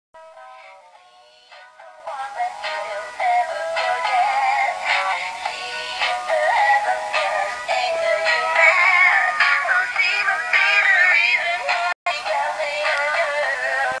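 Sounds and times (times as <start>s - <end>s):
tinny song from toy speaker: 0.2s - 14.0s.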